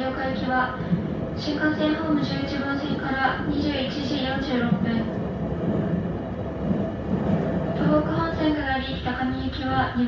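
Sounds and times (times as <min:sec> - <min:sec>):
train rumble inside carriage: 0:00.0 - 0:10.0.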